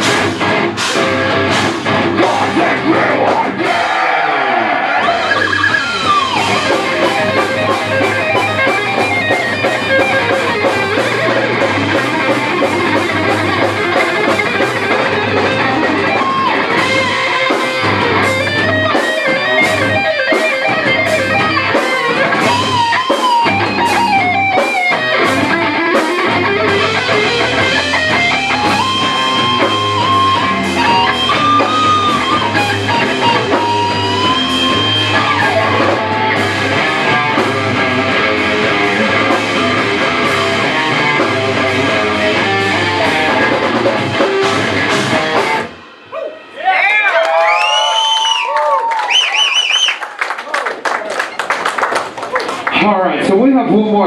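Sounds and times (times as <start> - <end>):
heavy metal band playing: 0.0 - 47.7.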